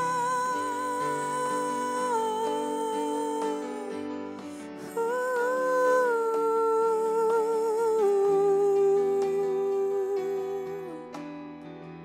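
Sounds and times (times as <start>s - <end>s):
woman singing wordless line: 0.0s - 11.2s
soft keyboard chords: 0.0s - 12.0s.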